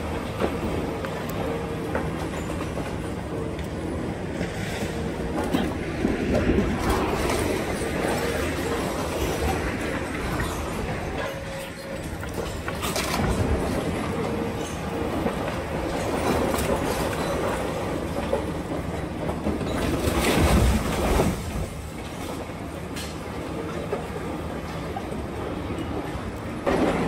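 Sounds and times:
excavator grapple grinding and scraping: 0.0 - 25.0.

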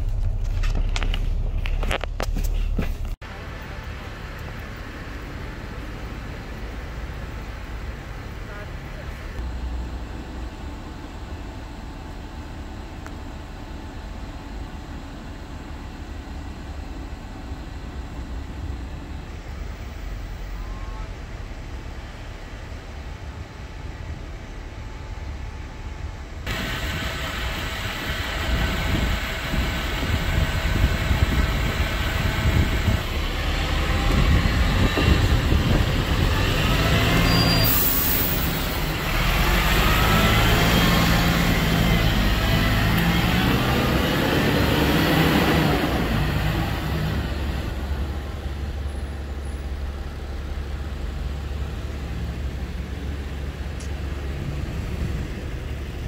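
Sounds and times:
bus diesel engine accelerating: 0.0 - 56.0
bus air hiss: 37.3 - 39.0.

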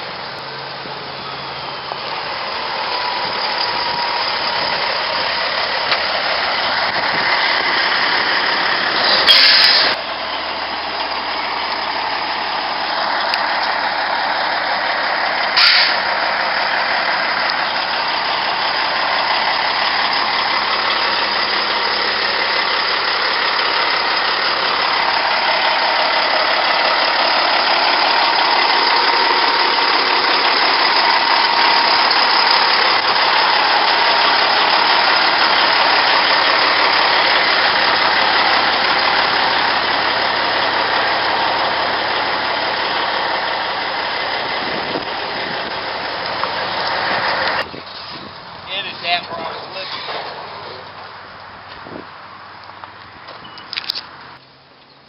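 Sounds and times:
diesel truck engine idling: 0.0 - 54.8.

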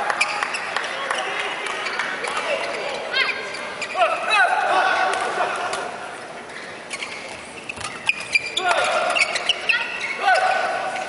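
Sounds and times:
voices in a hall: 0.0 - 11.0
shoes squeaking on court: 0.1 - 4.3, 6.2 - 11.0.

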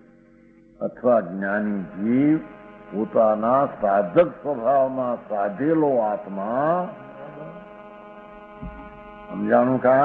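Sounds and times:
steady electrical hum: 0.0 - 10.0
low thump: 8.6 - 9.0.

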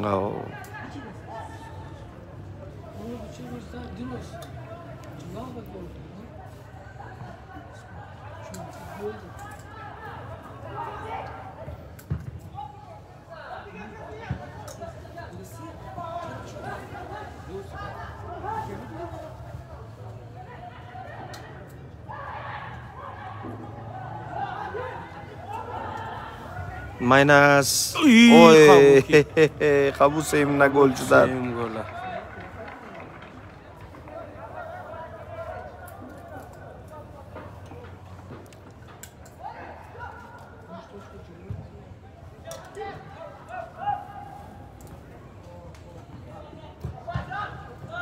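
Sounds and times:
murmur of distant voices: 0.0 - 48.0
man shouting drawn out: 27.6 - 29.4.

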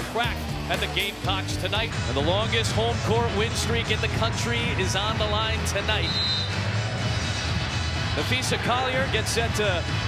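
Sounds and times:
crowd noise: 0.0 - 10.0
music over loudspeakers: 0.0 - 10.0.

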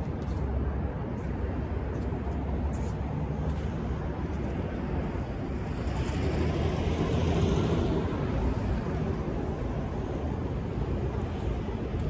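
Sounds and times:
traffic rumble: 0.0 - 12.0
wind: 0.0 - 12.0.

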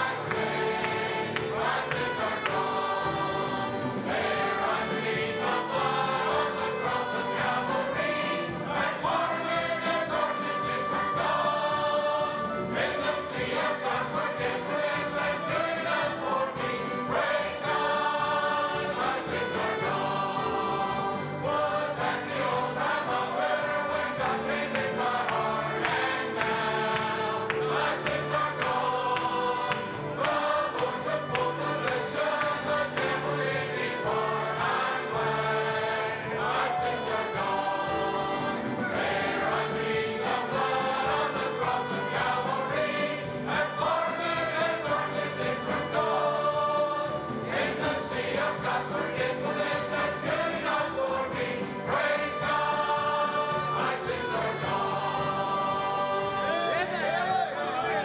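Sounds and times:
choir singing a hymn: 0.0 - 58.0
instrumental accompaniment: 0.0 - 58.0.

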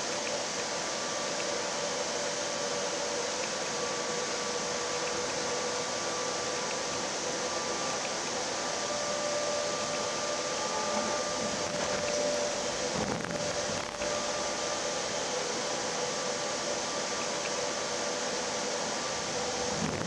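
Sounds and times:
train cabin running noise: 0.0 - 20.0
train drive whining: 0.0 - 20.0.

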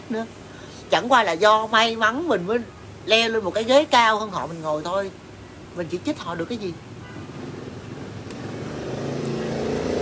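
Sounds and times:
vehicle engine approaching: 7.3 - 10.0.

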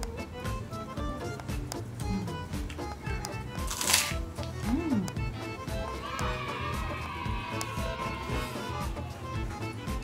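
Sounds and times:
background music: 0.0 - 10.0
cracker crunching: 3.6 - 4.2.

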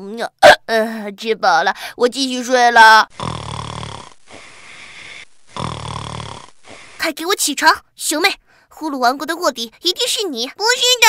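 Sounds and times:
cartoon snore: 3.1 - 7.0
breath in: 4.3 - 5.7, 6.4 - 7.1.

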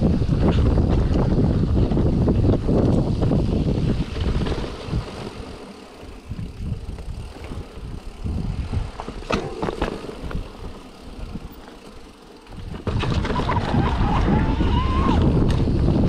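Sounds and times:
wind on microphone: 0.0 - 11.6, 12.5 - 16.0
bike rattling: 0.0 - 16.0
bike tyres rumbling on dirt: 0.0 - 16.0.

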